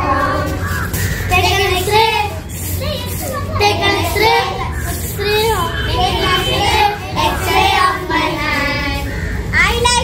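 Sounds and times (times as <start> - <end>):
young children singing together: 0.0 - 10.0.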